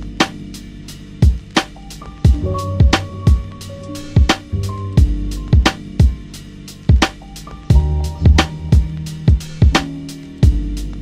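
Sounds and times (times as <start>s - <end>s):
instrumental hip-hop beat: 0.0s - 11.0s.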